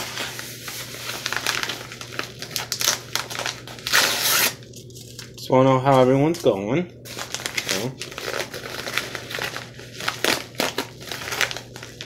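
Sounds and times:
padded envelope rustling: 0:00.0 - 0:06.5, 0:07.1 - 0:12.0.

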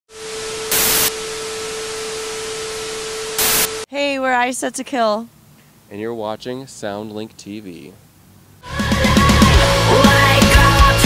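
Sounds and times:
static hiss: 0:00.1 - 0:03.9
mid-pitched hum: 0:00.1 - 0:11.0.

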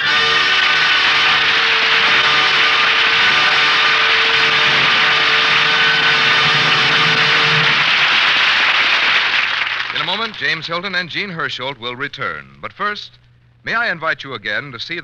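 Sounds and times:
orchestra holding a loud chord: 0:00.0 - 0:09.3.

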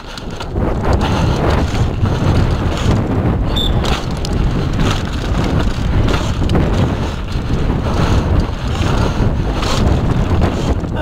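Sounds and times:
bike rattling knocks: 0:00.0 - 0:11.0
tyres on dirt: 0:00.0 - 0:11.0
wind rumble on microphone: 0:00.0 - 0:11.0.

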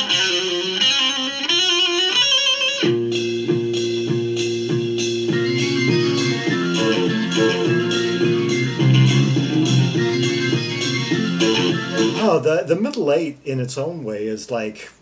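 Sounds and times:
organ: 0:00.0 - 0:12.4
bass guitar: 0:00.0 - 0:12.5
drum and cymbal beat: 0:02.8 - 0:12.3.

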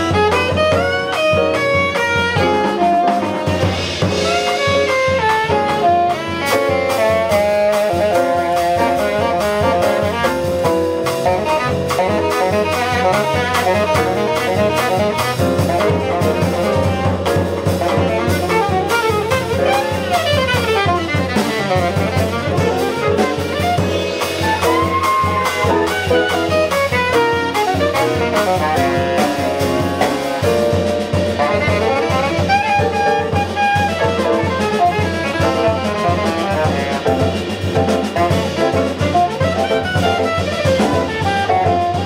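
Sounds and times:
alto saxophone solo: 0:00.0 - 0:42.0
double bass: 0:00.0 - 0:42.0
drum kit cymbals: 0:00.0 - 0:42.0
piano: 0:00.0 - 0:42.0.

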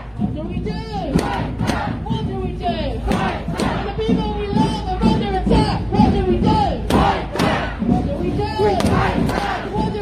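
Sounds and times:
crowd shouting: 0:01.2 - 0:02.0, 0:06.8 - 0:10.0.

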